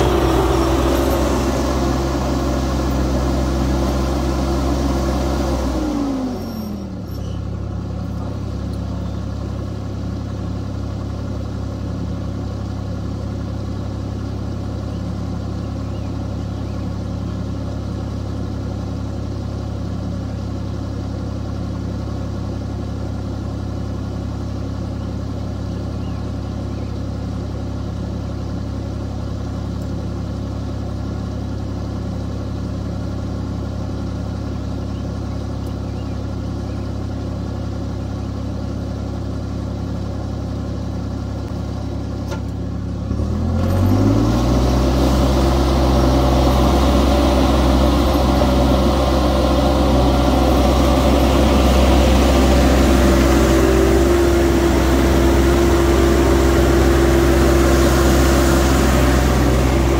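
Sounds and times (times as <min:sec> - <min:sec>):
engine dropping from high revs: 0:00.0 - 0:07.4, 0:43.1 - 0:59.9
skid steer engine idling: 0:00.0 - 0:59.9.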